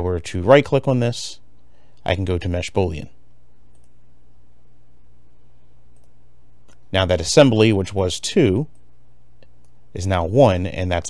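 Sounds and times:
low hum of room tone: 0:00.0 - 0:11.0
mouse clicks: 0:03.7 - 0:04.0.

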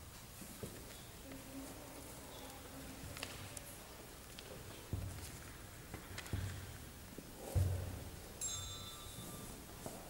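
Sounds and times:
high handbell ringing: 0:08.4 - 0:09.6.

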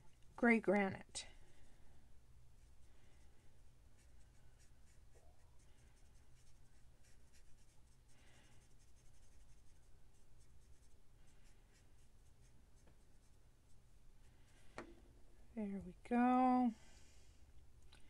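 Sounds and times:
marker scratching on card: 0:06.0 - 0:08.0.

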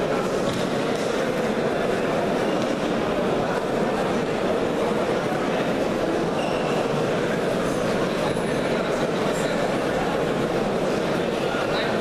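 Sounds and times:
crowded sports hall din: 0:00.0 - 0:12.0.

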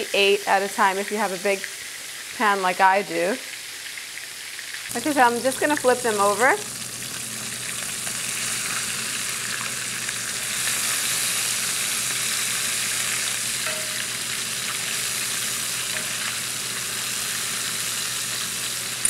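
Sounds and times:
meatballs sizzling in oil: 0:00.0 - 0:19.0
metal spoons clinking: 0:13.6 - 0:14.2.

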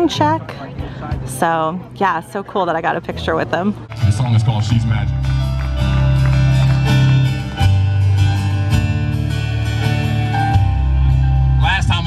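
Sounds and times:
picked guitar: 0:00.0 - 0:12.0.

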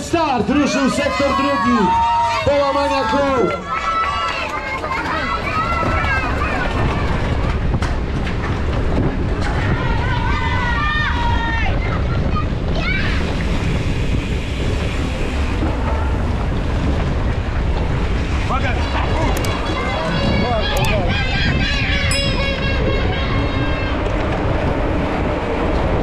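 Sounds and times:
wind rushing over microphone: 0:04.4 - 0:26.0.

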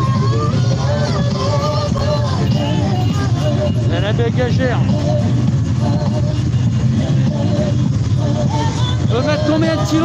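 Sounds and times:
motorcycle engines idling: 0:00.0 - 0:10.0.

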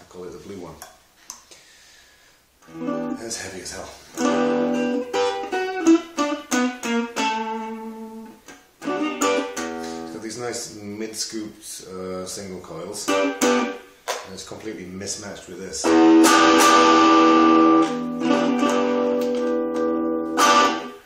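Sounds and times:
electric guitar playing: 0:02.6 - 0:03.5, 0:04.1 - 0:10.4, 0:13.0 - 0:13.9, 0:15.8 - 0:21.0.

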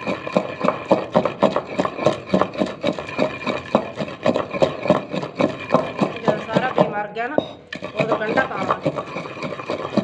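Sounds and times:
wooden pestle pounding in mortar: 0:00.0 - 0:10.0.

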